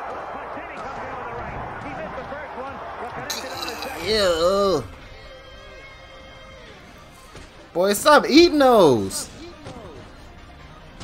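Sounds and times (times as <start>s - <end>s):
arena crowd noise: 0.0s - 5.0s
indistinct voices: 3.3s - 4.9s.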